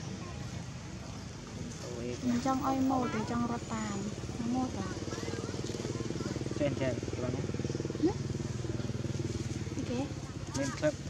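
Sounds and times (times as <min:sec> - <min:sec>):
small engine running: 0:00.4 - 0:11.0.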